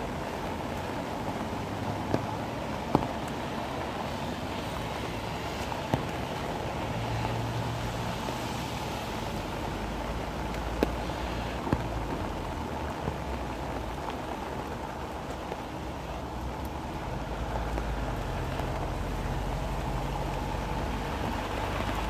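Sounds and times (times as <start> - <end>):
heavy rain falling: 0.0 - 22.0.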